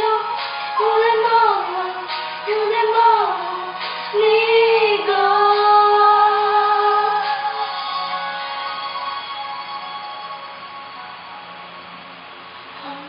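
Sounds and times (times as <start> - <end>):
girl singing a slow ballad: 0.0 - 8.2, 12.8 - 13.0.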